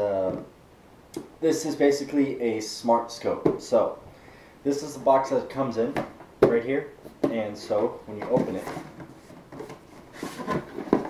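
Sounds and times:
cardboard sliding scrape: 0:08.4 - 0:11.0.

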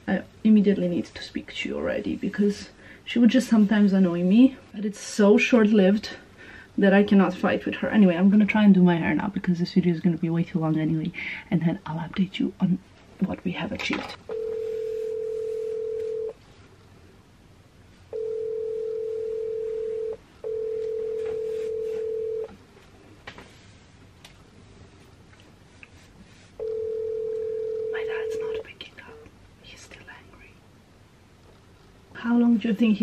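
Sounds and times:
telephone ringback tone: 0:14.3 - 0:16.4, 0:18.1 - 0:22.5, 0:26.6 - 0:28.4.

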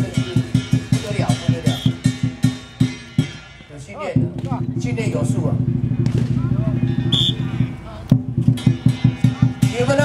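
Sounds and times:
voices calling: 0:00.0 - 0:10.0
fast drum roll on large drum: 0:04.2 - 0:06.9.

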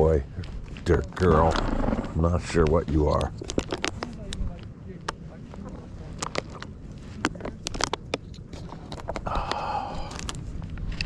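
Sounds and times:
low rumble of wind: 0:00.0 - 0:11.0
clicks and crackles of gear: 0:02.6 - 0:05.2, 0:06.1 - 0:11.0.

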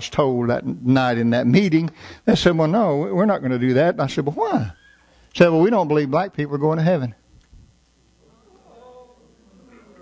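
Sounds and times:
preacher speaking: 0:00.0 - 0:07.2
murmur of voices: 0:08.2 - 0:10.0.

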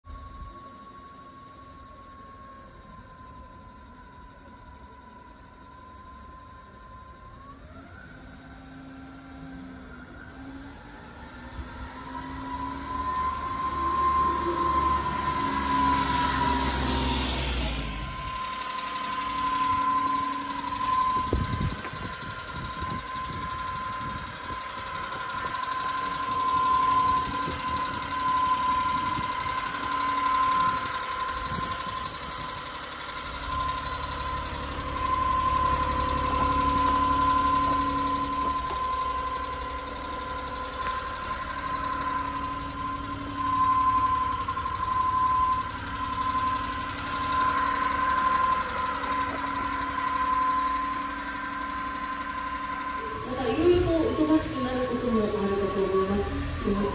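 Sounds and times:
high whine: 0:00.1 - 0:56.9
small truck engine idling: 0:00.1 - 0:56.9.

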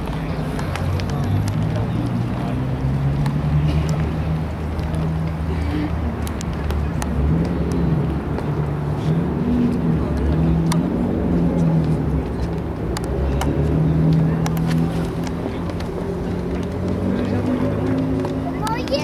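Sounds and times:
road traffic rumble: 0:00.0 - 0:19.0.

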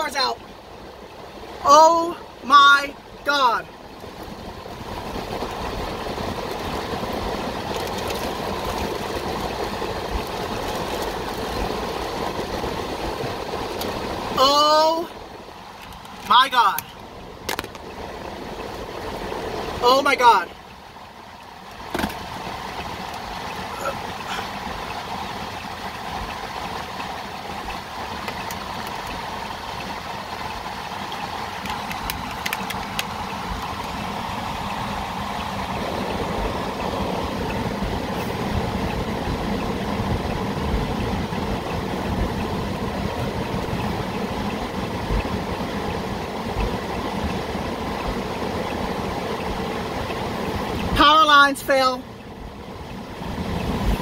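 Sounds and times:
car engine running: 0:00.0 - 0:54.0
steady rain: 0:00.0 - 0:54.0.

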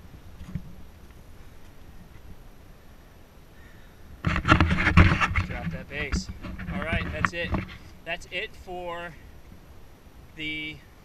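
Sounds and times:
low steady background noise: 0:00.0 - 0:11.0
camera handling rubbing and knocking: 0:04.2 - 0:07.9.

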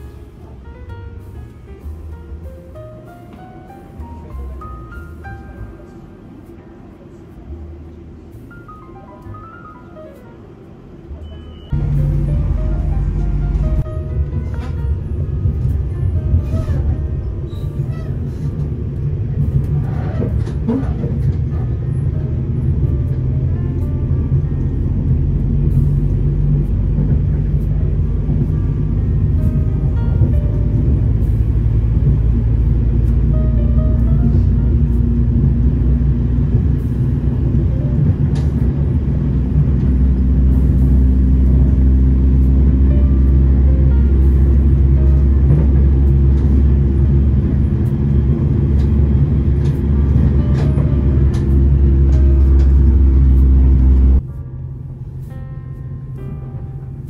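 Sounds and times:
train rumbling on track: 0:00.0 - 0:57.0.

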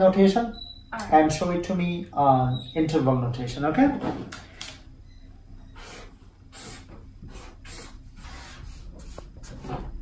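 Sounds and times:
marker scratching on paper: 0:05.8 - 0:09.9.

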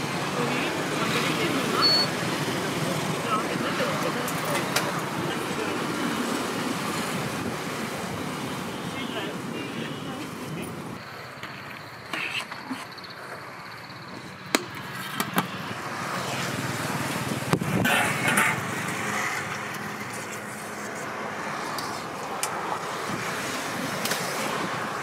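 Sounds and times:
road traffic: 0:00.0 - 0:25.0.

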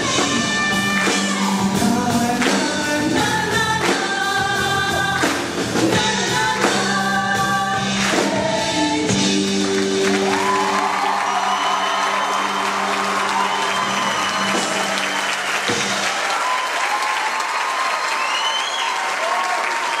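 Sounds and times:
audience applauding: 0:09.4 - 0:20.0.

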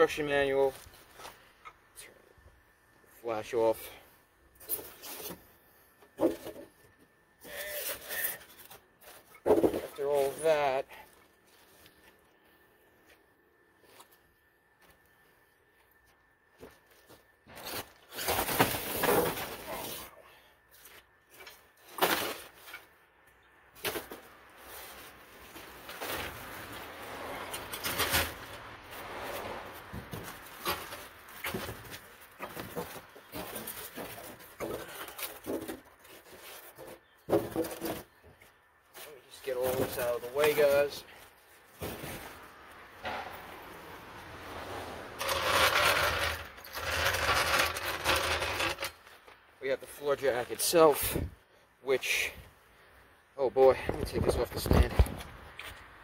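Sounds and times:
styrofoam and cardboard rustling: 0:17.4 - 0:20.2, 0:23.8 - 0:27.2, 0:38.9 - 0:42.7.

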